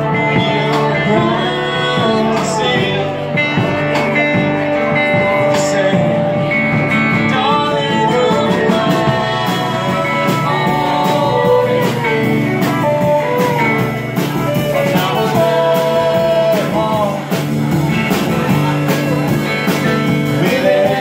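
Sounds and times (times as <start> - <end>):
person singing: 0.0 - 21.0
strummed acoustic guitar: 0.0 - 21.0
upright bass: 0.0 - 21.0.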